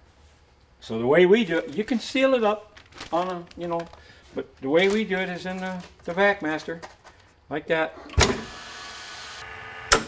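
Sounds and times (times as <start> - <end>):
vacuum pump running with hiss: 8.1 - 10.0.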